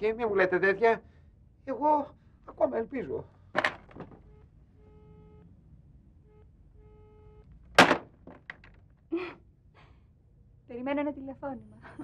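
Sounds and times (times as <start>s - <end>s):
handset clattering: 3.6s - 4.2s
pulsing telephone line beep: 4.2s - 5.5s, 6.2s - 7.4s.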